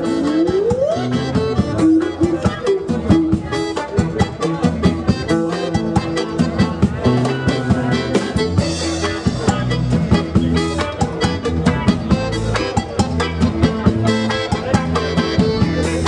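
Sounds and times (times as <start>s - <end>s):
accordion: 0.0s - 16.0s
drum kit fast beat: 0.0s - 16.0s
electric guitar: 0.0s - 16.0s.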